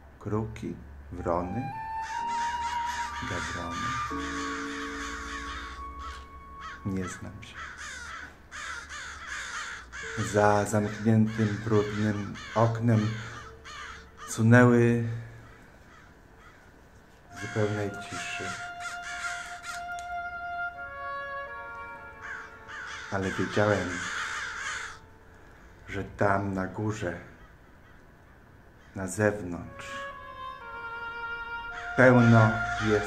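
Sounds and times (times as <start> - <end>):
crows cawing: 1.8 - 20.2, 21.9 - 26.1, 27.1 - 29.9, 31.6 - 33.0.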